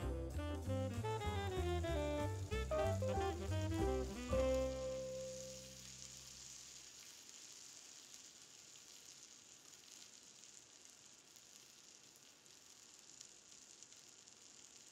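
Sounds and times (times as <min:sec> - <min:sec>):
held music note: 0:00.2 - 0:05.8
butter sizzling in a pan: 0:02.2 - 0:14.9.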